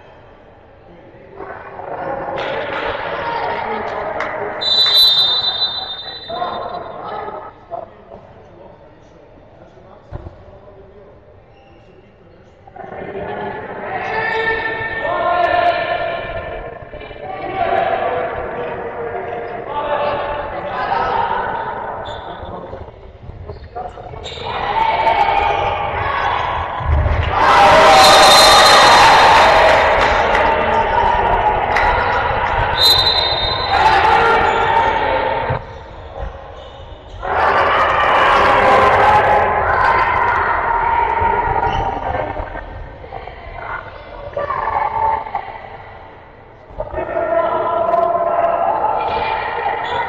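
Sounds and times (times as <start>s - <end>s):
players and spectators shouting: 24.3s - 42.4s, 46.8s - 50.0s.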